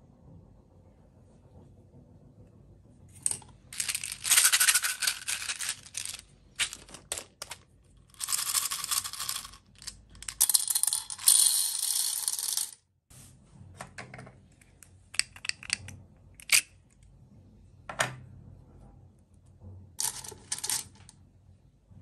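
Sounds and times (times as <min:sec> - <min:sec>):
beads rattling into metal cup: 0:03.3 - 0:12.8, 0:20.0 - 0:21.0.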